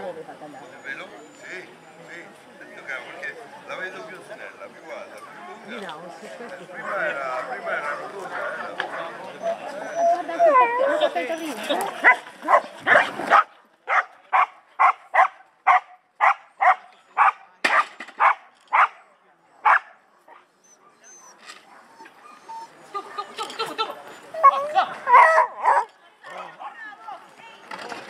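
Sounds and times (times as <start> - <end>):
people's voices: 0.0 - 13.1, 18.7 - 28.0
dog barking excitedly: 12.0 - 19.0, 19.7 - 19.9, 25.0 - 25.9.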